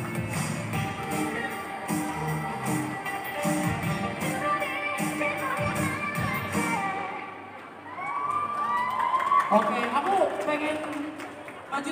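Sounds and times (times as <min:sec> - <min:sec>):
dance music: 0:00.0 - 0:07.4
whooping shouts: 0:07.8 - 0:09.8
audience cheering: 0:07.8 - 0:10.3.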